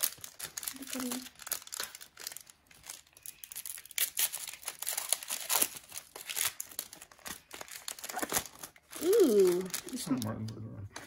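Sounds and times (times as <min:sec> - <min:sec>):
plastic wrapper crinkling: 0:00.0 - 0:11.0.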